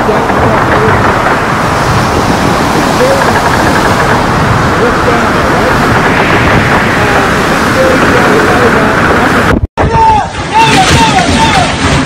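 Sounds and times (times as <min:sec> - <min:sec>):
hurricane wind and driving rain: 0:00.0 - 0:12.0
whistling wind gusts: 0:00.0 - 0:12.0.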